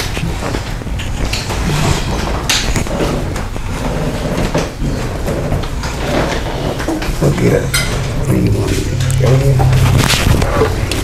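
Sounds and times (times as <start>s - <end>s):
steady low rumble: 7.2s - 11.0s
microphone handling noise: 8.0s - 11.0s.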